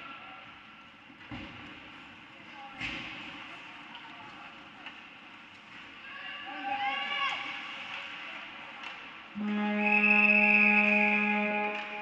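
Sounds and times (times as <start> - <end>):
voices echoing in arena: 2.1 - 12.0
music with brass tones: 9.4 - 12.0.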